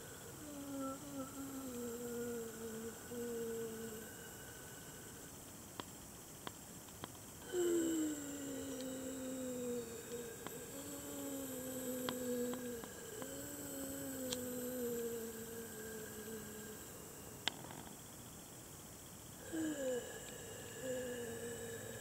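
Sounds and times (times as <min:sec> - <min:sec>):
person humming long notes: 0:00.0 - 0:05.1, 0:07.4 - 0:17.5, 0:19.4 - 0:22.0
faint clicks: 0:12.0 - 0:13.3, 0:14.2 - 0:15.1.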